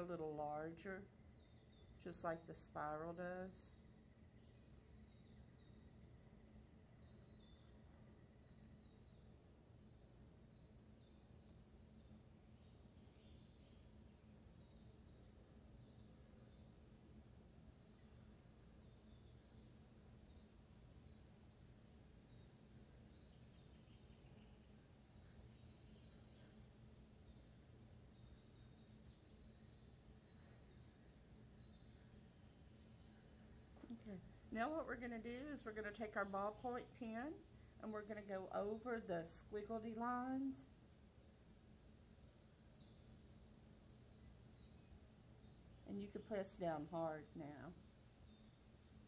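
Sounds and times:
high bird chirps: 0:00.0 - 0:40.8
steady low hum: 0:00.0 - 0:49.0.

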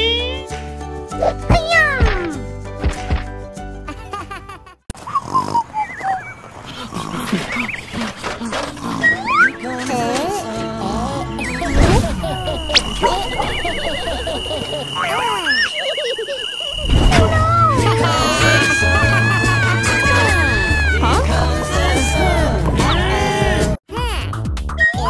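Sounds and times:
background music: 0:00.0 - 0:04.6, 0:08.8 - 0:12.9, 0:17.2 - 0:25.0
cartoon character voice effects: 0:01.5 - 0:02.4, 0:23.9 - 0:25.0.

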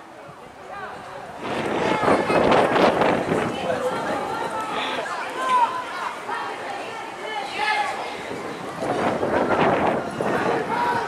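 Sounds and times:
rush of loud noise: 0:00.7 - 0:11.0
people shouting: 0:09.5 - 0:11.0.

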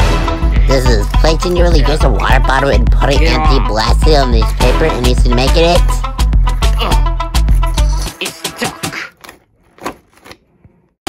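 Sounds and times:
plastic bottles crinkling: 0:08.9 - 0:10.6.

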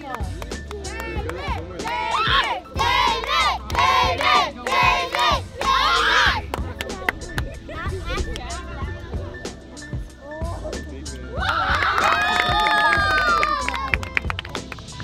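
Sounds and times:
children shouting and cheering: 0:00.9 - 0:06.5, 0:11.4 - 0:14.2.

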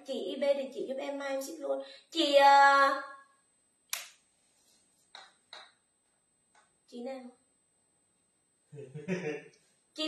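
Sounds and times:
woman's voice: 0:00.0 - 0:03.1, 0:06.9 - 0:07.4.

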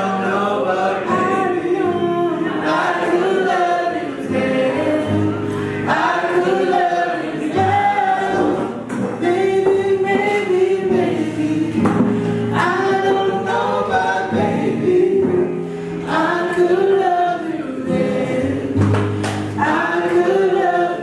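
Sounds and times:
classical guitar: 0:00.0 - 0:21.0
woman singing: 0:00.0 - 0:21.0
singer breathing: 0:05.4 - 0:05.9, 0:12.0 - 0:12.6, 0:15.5 - 0:16.1.

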